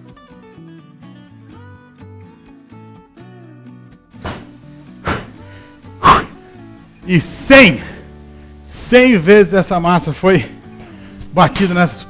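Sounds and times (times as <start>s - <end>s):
light melodic music: 0.0s - 12.0s.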